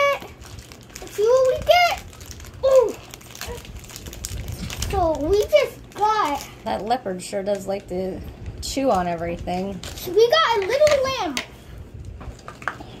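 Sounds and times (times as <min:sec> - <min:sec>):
plastic wrapping crinkling: 0:00.0 - 0:11.2
children's high-pitched vocal sounds: 0:01.0 - 0:03.8.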